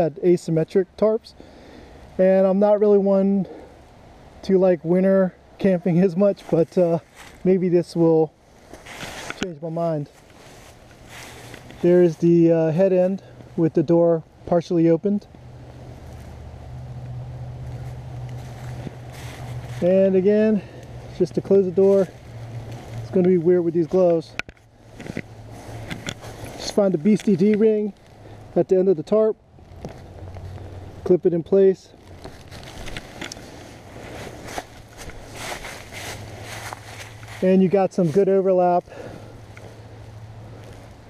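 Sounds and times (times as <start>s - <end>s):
dry leaves crunching underfoot: 6.3s - 7.6s, 8.4s - 12.5s, 15.5s - 28.5s, 31.9s - 41.0s
fabric rustling: 8.5s - 9.4s, 32.0s - 38.1s.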